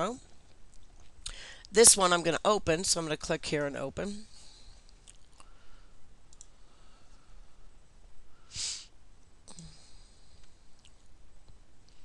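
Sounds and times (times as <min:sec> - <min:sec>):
low background noise: 0:00.0 - 0:12.0
computer mouse clicks: 0:06.3 - 0:06.5.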